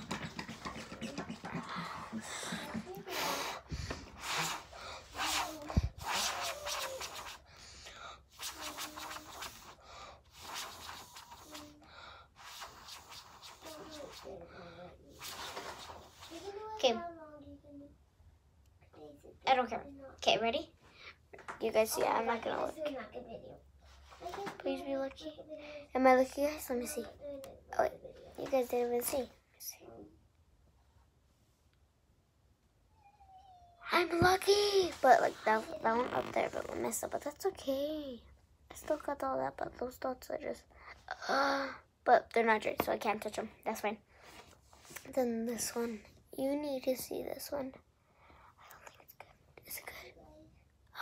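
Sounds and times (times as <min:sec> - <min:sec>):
girl blowing breathy puffs: 0:00.1 - 0:14.4.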